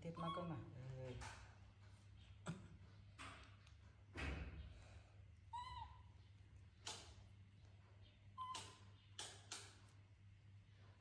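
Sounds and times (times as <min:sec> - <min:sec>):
baby monkey coo call: 0:05.5 - 0:06.1, 0:08.4 - 0:09.0.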